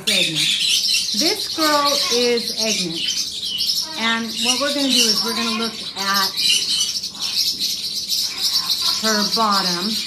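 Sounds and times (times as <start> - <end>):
parrots chirping: 0.0 - 10.0.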